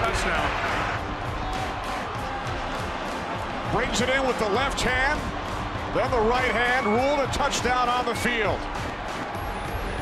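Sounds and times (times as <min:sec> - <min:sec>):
background music: 0:00.0 - 0:10.0
stadium crowd noise: 0:00.0 - 0:10.0.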